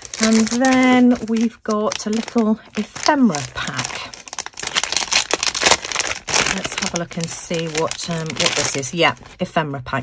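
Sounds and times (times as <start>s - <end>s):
plastic packet crinkling: 0.0s - 9.6s.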